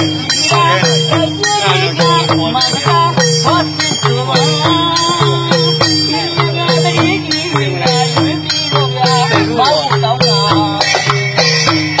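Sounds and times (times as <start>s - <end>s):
clay-pot drums played by hand: 0.0s - 12.0s
steady high ringing: 0.0s - 12.0s.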